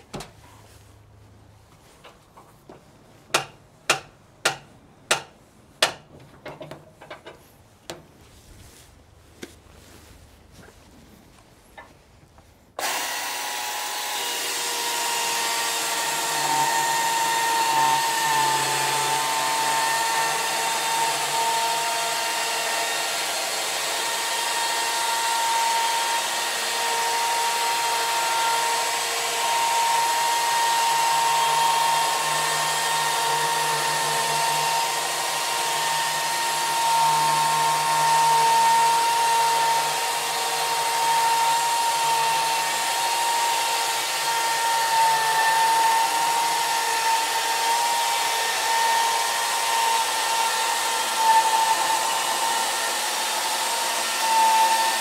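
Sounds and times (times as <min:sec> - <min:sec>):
electric chainsaw motor whine: 0:12.8 - 0:55.0.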